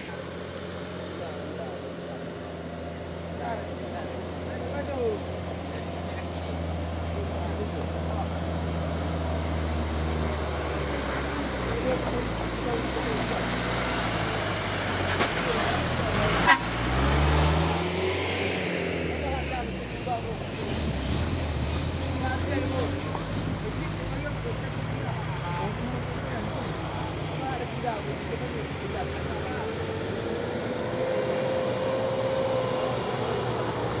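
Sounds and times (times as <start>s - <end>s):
truck diesel engine climbing: 0.0s - 34.0s.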